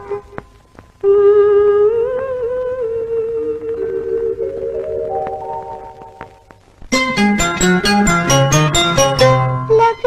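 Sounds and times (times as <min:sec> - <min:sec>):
woman humming a slow melody: 0:01.0 - 0:04.5.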